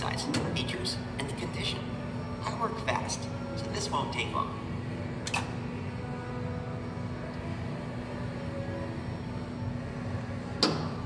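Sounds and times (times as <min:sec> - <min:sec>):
faint music: 0:00.0 - 0:11.0
low machine hum: 0:00.0 - 0:11.0.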